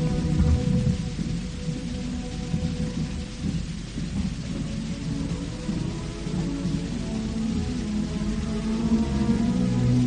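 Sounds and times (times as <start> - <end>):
orchestra low rumbling passage: 0.0 - 10.0
recording hiss: 0.0 - 10.0.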